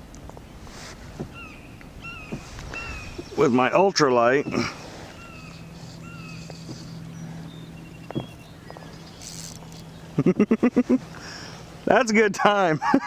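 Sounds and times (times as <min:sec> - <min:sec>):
man laughing rapidly: 0:10.2 - 0:11.0, 0:12.8 - 0:13.0.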